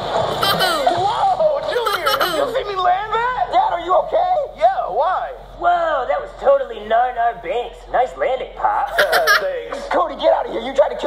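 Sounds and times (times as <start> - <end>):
person laughing: 0.3 - 1.0, 1.7 - 2.6, 8.9 - 9.5.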